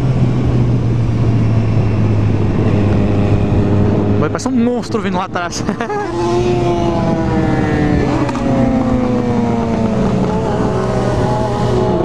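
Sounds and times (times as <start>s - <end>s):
motorcycle engine cruising: 0.0s - 12.0s
steady rushing noise: 0.0s - 12.0s.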